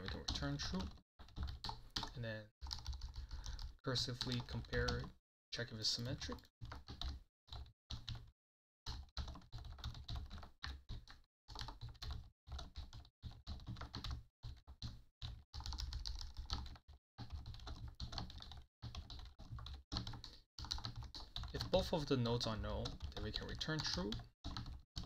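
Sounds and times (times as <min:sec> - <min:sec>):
rapid typing on a keyboard: 0:00.0 - 0:08.3, 0:08.9 - 0:25.0.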